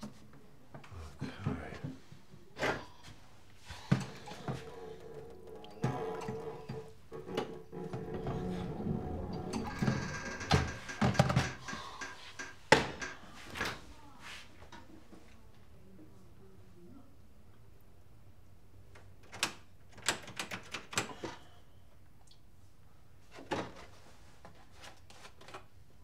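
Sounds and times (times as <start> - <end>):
kitchen items knocking and clattering: 3.9 - 13.7
door opening: 4.0 - 13.7
background music: 4.2 - 12.3.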